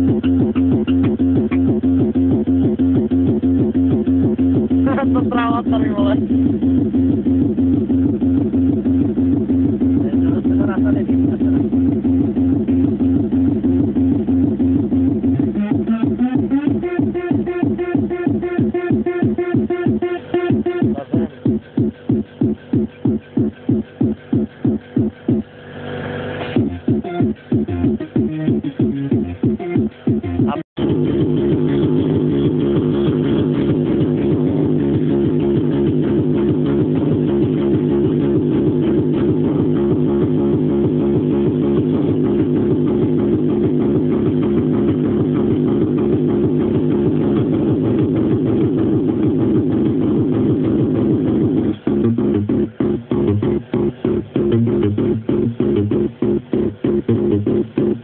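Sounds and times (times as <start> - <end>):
hardcore techno kick drum: 0.0 - 25.5, 26.4 - 58.0
heavy repeating synth riff: 0.0 - 25.6, 26.4 - 58.0.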